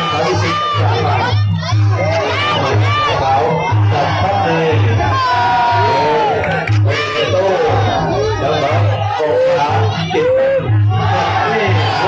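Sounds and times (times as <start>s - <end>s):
crowd shouting: 0.0s - 12.0s
drum beat: 1.5s - 8.9s.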